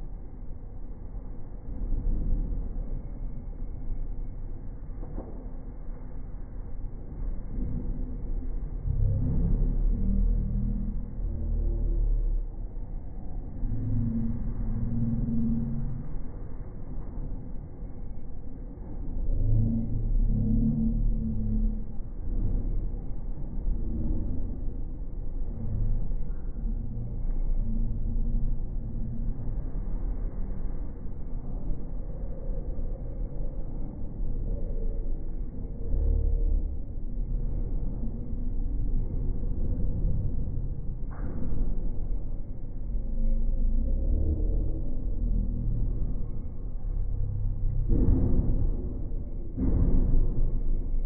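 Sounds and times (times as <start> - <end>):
slowed train rumble: 0.0 - 51.0.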